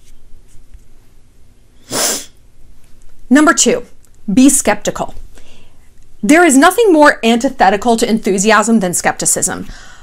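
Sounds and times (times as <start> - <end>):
woman's sharp breath: 9.7 - 10.0.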